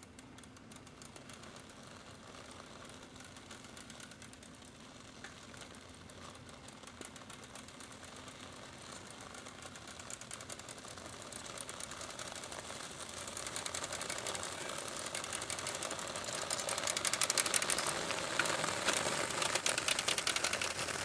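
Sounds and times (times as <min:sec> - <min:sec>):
fast clicking rattle: 0:00.0 - 0:21.0
wheels rolling over asphalt: 0:00.0 - 0:21.0.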